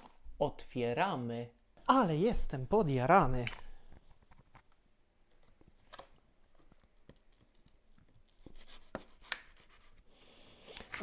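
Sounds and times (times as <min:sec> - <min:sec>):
knife cutting paper wrapping: 0:07.2 - 0:10.0, 0:10.7 - 0:11.0
knife scraping: 0:08.3 - 0:10.1.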